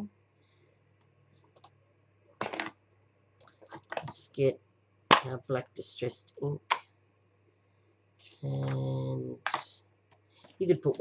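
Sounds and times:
plastic clatter: 2.4 - 2.8, 3.4 - 4.2.

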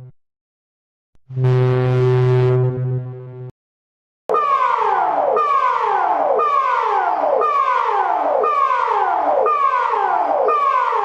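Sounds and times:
alarm tone dropping in pitch: 4.3 - 11.0.

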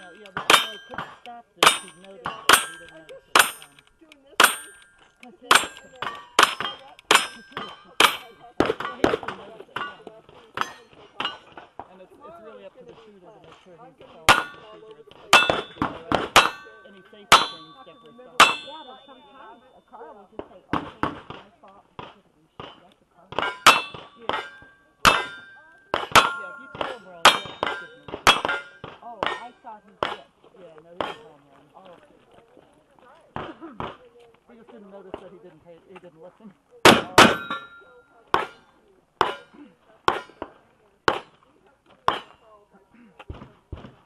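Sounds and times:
steel target ringing: 0.0 - 3.7, 4.4 - 8.3, 15.4 - 19.6, 23.4 - 28.8, 37.1 - 37.8.

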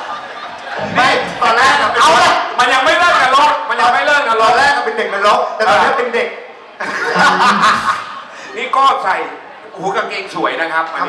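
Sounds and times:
people laughing: 0.0 - 2.0, 6.7 - 8.8.

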